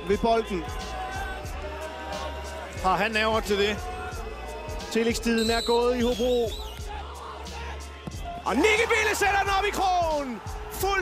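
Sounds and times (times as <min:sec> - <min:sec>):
music with steady bass beat: 0:00.0 - 0:11.0.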